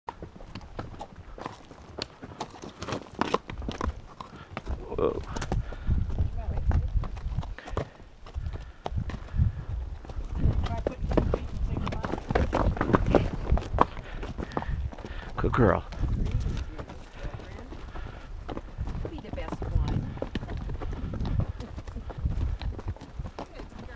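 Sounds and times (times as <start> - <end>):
hooves clip-clopping on rock: 0.1 - 23.9.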